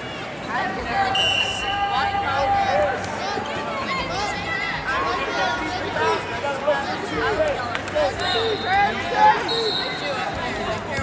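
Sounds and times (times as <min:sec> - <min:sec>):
spectators chattering: 0:00.0 - 0:11.0.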